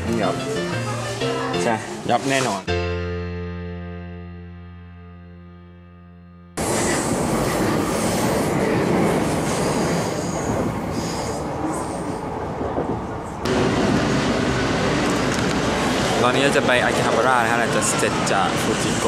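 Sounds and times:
train wheels rumbling on track: 6.6 - 19.0
loud steady noise: 13.5 - 19.0.

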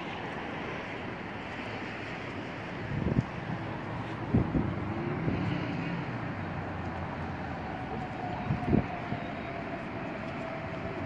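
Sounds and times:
city rumble: 0.0 - 11.0
distant engine drone: 0.0 - 11.0.

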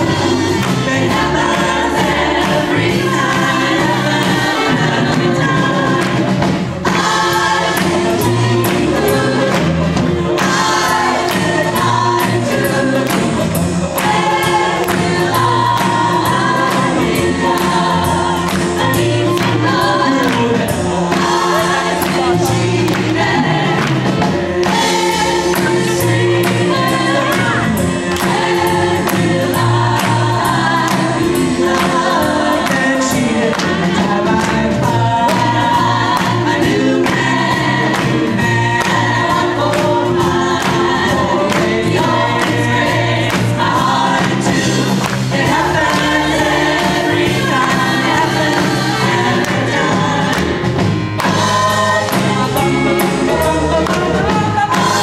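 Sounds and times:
drums steady beat: 0.0 - 55.0
live band backing: 0.0 - 55.0
women singing in harmony: 0.0 - 55.0.

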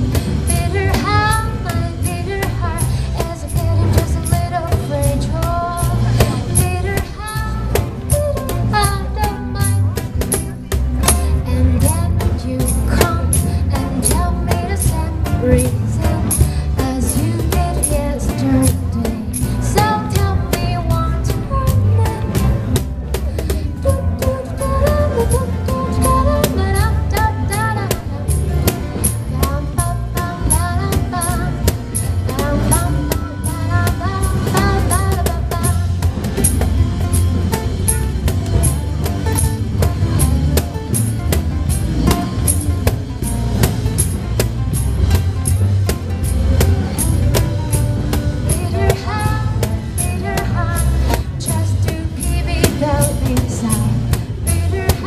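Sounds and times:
woman singing: 0.0 - 37.3, 47.0 - 55.0
acoustic guitars: 0.0 - 55.0
bass guitar: 0.0 - 55.0
cajon beat: 0.0 - 55.0.

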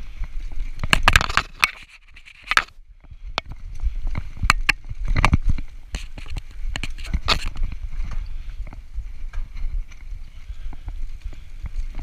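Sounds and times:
mountain bike rattling over ground: 0.0 - 12.0
wind rumble on microphone: 0.0 - 12.0.

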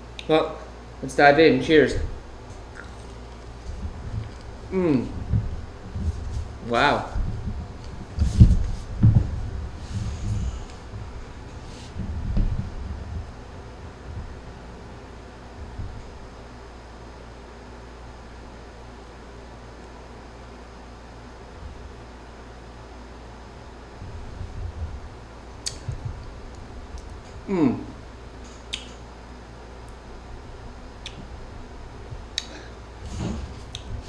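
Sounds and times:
low room hum: 0.0 - 34.0
person chewing: 2.6 - 3.6.

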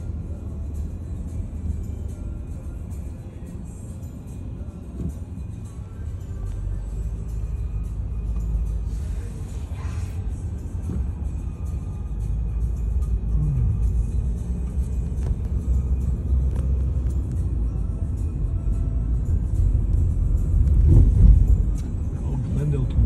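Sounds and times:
car road and engine rumble: 0.0 - 23.0.

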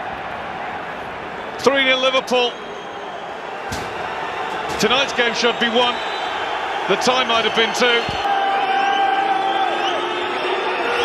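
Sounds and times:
stadium crowd noise: 0.0 - 11.0
commentator speaking: 4.8 - 6.0, 6.9 - 8.1.

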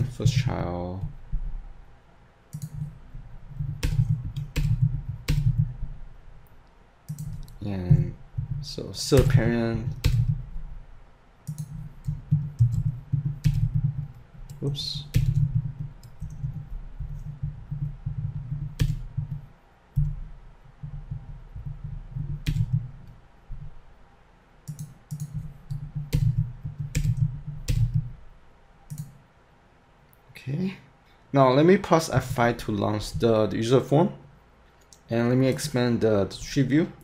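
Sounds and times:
computer keyboard typing: 2.5 - 5.9, 7.1 - 10.6, 11.4 - 20.2, 20.8 - 23.7, 24.7 - 28.1, 28.9 - 29.1.

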